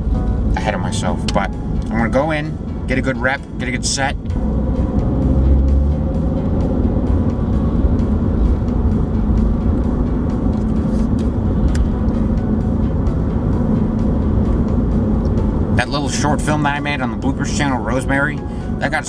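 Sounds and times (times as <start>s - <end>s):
car engine and road noise: 0.0s - 19.0s
constant hum: 0.0s - 19.0s.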